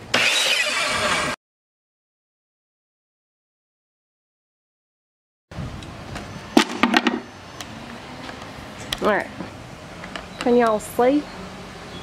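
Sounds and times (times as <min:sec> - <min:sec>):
sharp knocks and clatter: 0:06.6 - 0:07.2.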